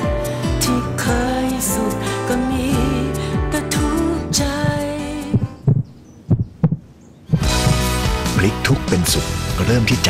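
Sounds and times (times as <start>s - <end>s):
song: 1.1s - 5.6s, 7.4s - 8.7s
heartbeat thumps: 4.3s - 8.1s.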